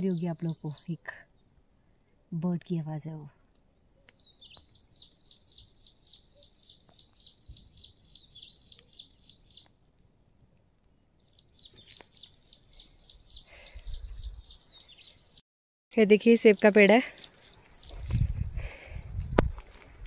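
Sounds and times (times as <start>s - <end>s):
bird singing a fast trill: 0.0s - 1.5s, 4.0s - 9.6s, 11.3s - 15.4s, 16.0s - 18.2s.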